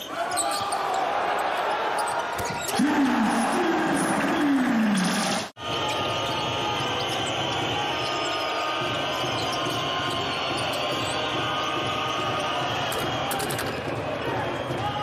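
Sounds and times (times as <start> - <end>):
crowd noise in large hall: 0.0 - 15.0.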